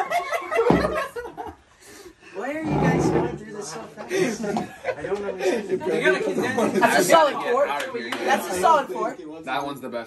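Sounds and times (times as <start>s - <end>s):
men laughing: 3.8s - 6.2s.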